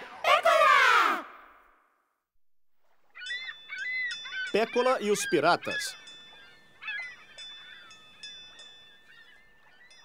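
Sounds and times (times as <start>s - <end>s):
seagulls crying: 3.1s - 10.0s.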